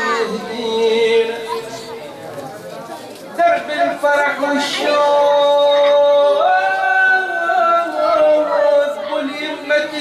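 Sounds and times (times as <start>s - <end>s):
murmur of audience voices: 0.0s - 10.0s
man chanting into microphone: 3.4s - 10.0s.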